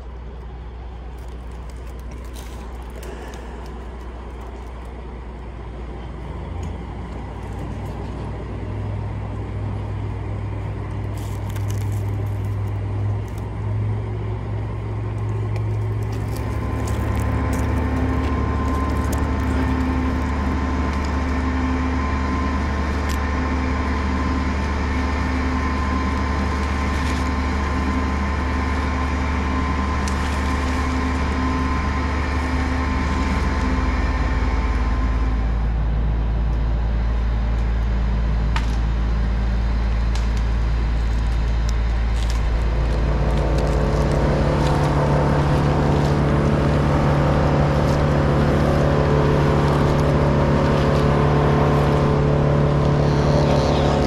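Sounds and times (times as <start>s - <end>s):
crane engine running: 0.0s - 54.0s.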